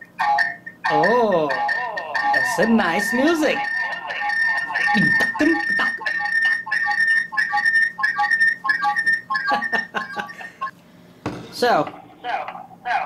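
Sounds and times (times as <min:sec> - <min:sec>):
pulsing electronic feedback tones: 0:00.0 - 0:10.7.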